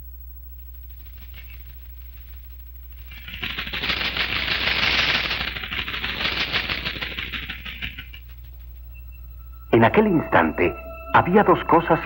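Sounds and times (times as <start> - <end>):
fast mechanical clattering: 0.7 - 8.8.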